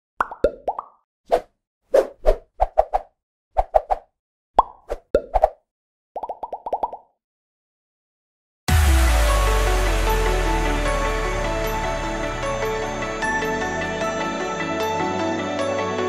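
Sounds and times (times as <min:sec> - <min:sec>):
cartoon plops and pops: 0:00.2 - 0:01.0, 0:04.6 - 0:05.6, 0:06.2 - 0:07.2.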